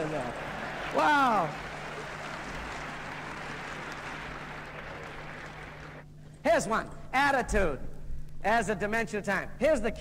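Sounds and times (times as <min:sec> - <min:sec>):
audience applauding: 0:00.0 - 0:06.0
faint low hum: 0:00.0 - 0:10.0.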